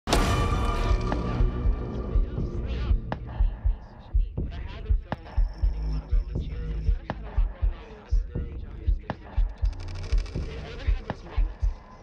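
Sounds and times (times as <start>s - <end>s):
low throbbing pulses: 0.1s - 11.6s.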